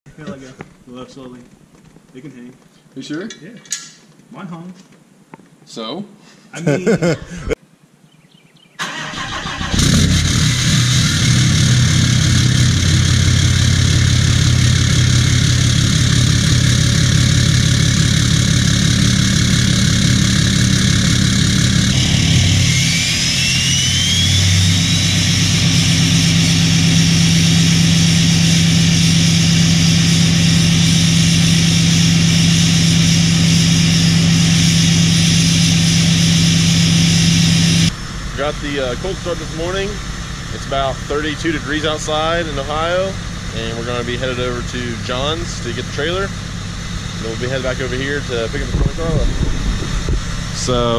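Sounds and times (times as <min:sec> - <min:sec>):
diesel engine cranking: 0:08.8 - 0:40.0
diesel engine idling loudly: 0:09.4 - 0:50.9
rising turbo whistle: 0:13.1 - 0:38.1.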